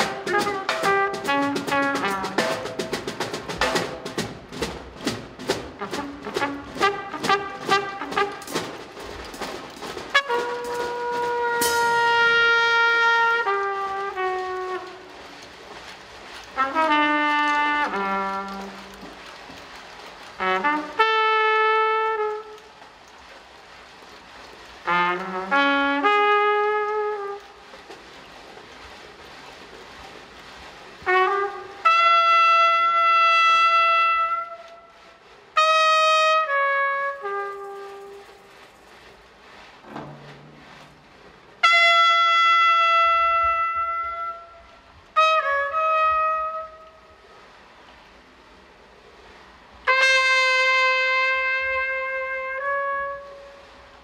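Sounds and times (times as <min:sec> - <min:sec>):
trumpet playing jazz: 0:00.0 - 0:19.5, 0:20.2 - 0:22.9, 0:24.8 - 0:28.1, 0:30.9 - 0:38.7, 0:40.0 - 0:47.3, 0:49.8 - 0:54.0.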